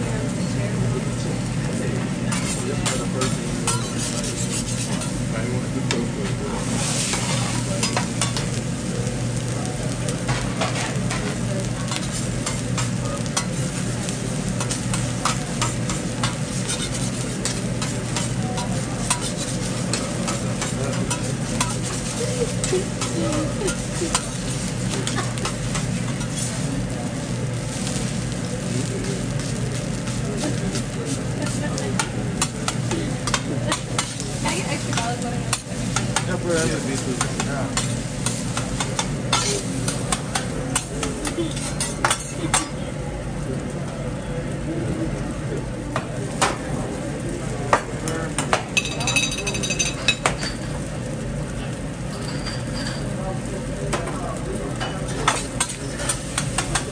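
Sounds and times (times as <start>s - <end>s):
food sizzling on griddle: 0.0s - 56.9s
metal spatula scraping and tapping: 2.3s - 5.2s, 14.6s - 22.2s, 22.9s - 24.7s, 31.5s - 34.2s, 37.0s - 42.7s.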